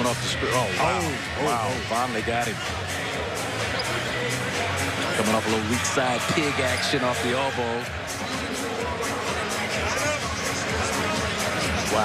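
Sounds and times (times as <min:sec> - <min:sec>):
arena music: 0:00.0 - 0:12.0
crowd din: 0:00.0 - 0:12.0.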